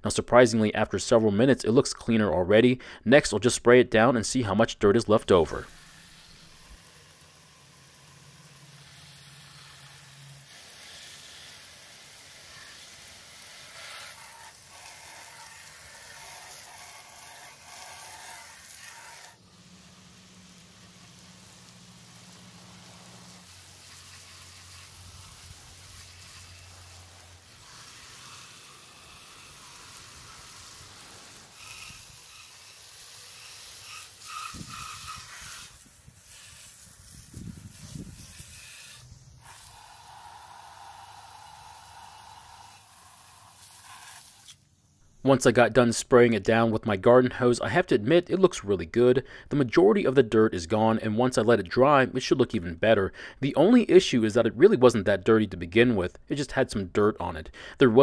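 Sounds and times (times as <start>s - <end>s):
hose water spraying and splashing: 5.3s - 44.7s.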